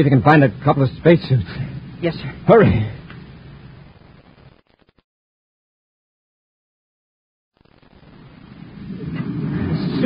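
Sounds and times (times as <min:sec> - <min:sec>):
faint steady rushing noise: 0:00.0 - 0:04.8, 0:07.6 - 0:10.0.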